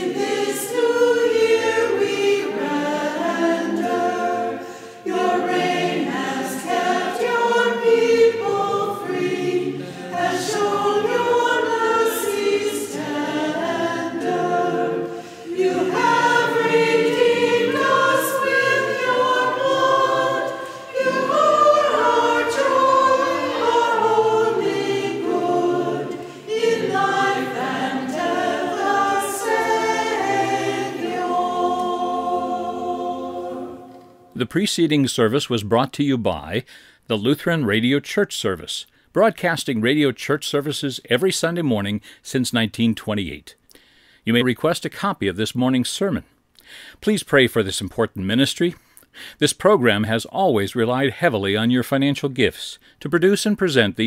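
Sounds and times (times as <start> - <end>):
choir singing a hymn: 0.0 - 34.4.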